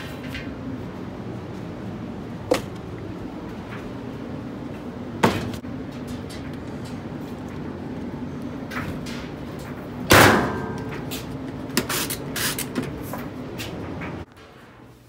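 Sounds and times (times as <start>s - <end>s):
steady machine hum: 0.0s - 15.0s.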